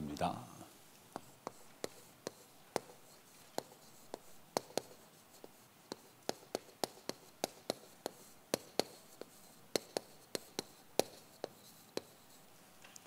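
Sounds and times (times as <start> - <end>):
chalk tapping on chalkboard: 1.1 - 12.5.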